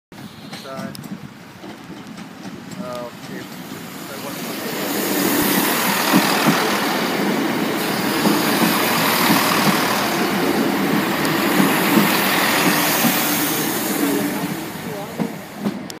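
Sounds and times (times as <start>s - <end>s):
passing train rumble: 0.1s - 16.0s
wheel clatter over rail joints: 0.2s - 16.0s.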